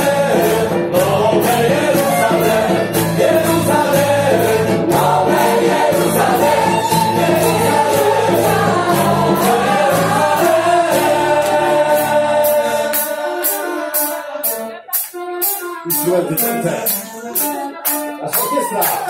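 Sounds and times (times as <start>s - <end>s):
choir of voices singing: 0.0s - 15.2s
band with guitars and violin: 0.0s - 19.0s.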